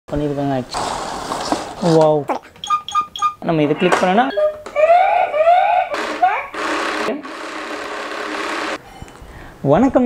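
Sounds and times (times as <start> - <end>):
small motor whirring: 5.6 - 8.8.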